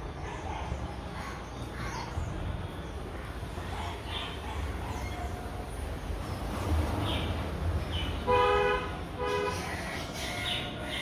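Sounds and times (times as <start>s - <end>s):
vehicle horn honking: 8.3s - 9.6s.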